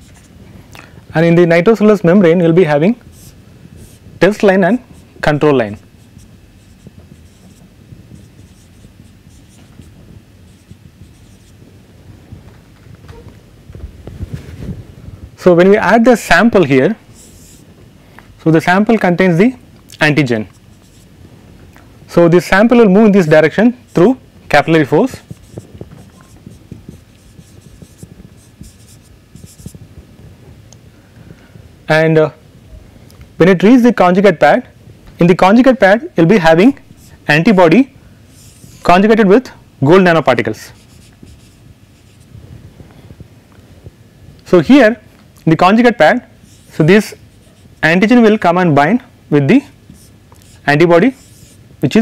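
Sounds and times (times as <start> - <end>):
marker pen scratching on whiteboard: 3.1 - 5.1, 5.7 - 11.6, 17.1 - 17.7, 20.3 - 21.1, 23.9 - 24.2, 24.8 - 29.9, 36.8 - 37.2, 38.3 - 39.2, 40.5 - 42.3, 46.4 - 48.3, 49.9 - 51.6.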